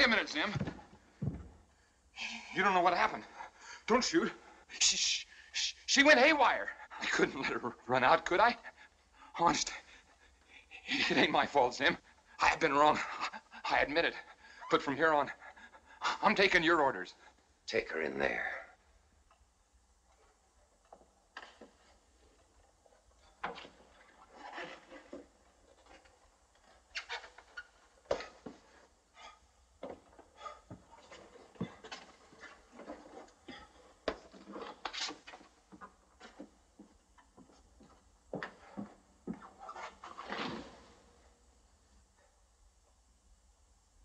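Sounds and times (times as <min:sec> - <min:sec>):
footsteps on wooden floorboards: 0:00.0 - 0:01.7, 0:29.8 - 0:40.8.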